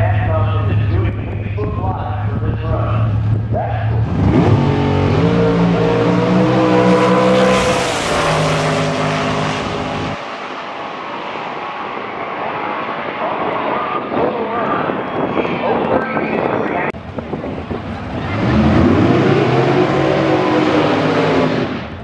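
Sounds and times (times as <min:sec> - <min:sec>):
distant engine: 0:00.0 - 0:14.6
wind noise: 0:00.0 - 0:20.8
dragster engine accelerating hard: 0:03.9 - 0:10.6, 0:17.8 - 0:22.0.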